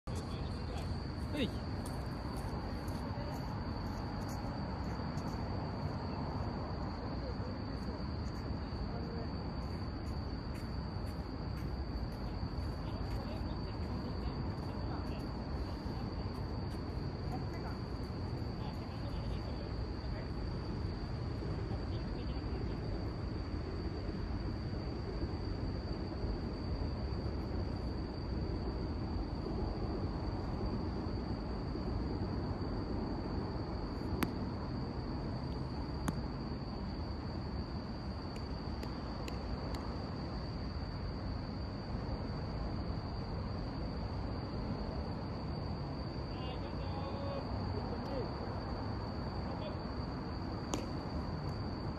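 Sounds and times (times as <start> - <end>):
insects trilling: 0.1 - 51.9.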